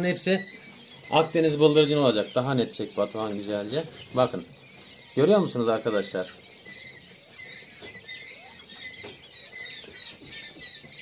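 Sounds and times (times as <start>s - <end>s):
quail chicks peeping: 0.0s - 11.0s.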